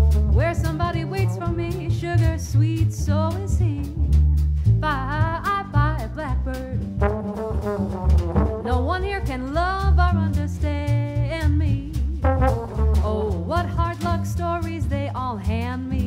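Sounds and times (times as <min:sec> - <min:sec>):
jazz trombone sliding notes: 0:00.0 - 0:10.2, 0:11.8 - 0:14.7
drum kit keeping time: 0:00.0 - 0:16.0
upright bass: 0:00.0 - 0:16.0.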